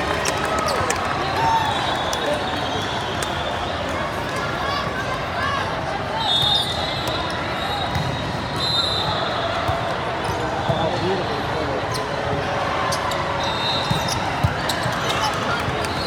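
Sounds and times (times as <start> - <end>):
indistinct chatter: 0.0 - 16.0
high whistle: 6.2 - 9.2, 13.4 - 14.1.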